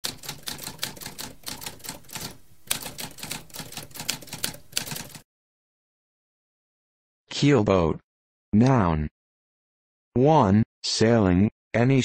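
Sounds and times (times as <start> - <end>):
typewriter keys clacking: 0.0 - 5.2.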